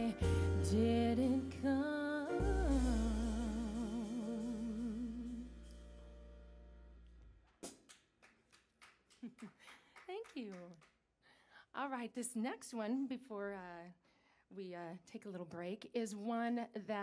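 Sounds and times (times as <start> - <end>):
person singing with vibrato: 0.0 - 5.7
jazz band playing: 0.0 - 6.8
upright bass notes: 0.0 - 7.2
scattered claps: 7.5 - 11.0.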